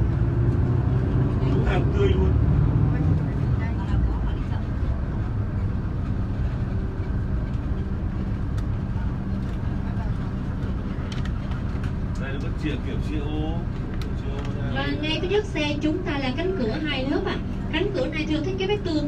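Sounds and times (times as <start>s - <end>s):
road noise: 0.0s - 19.0s
vehicle engine humming: 0.0s - 19.0s.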